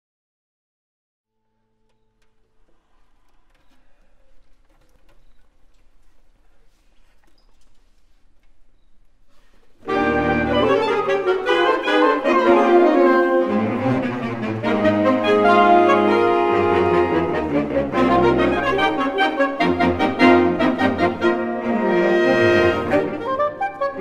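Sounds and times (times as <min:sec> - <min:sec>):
faint stage and hall sounds: 0:01.4 - 0:24.0
saxophone ensemble chords: 0:09.8 - 0:24.0.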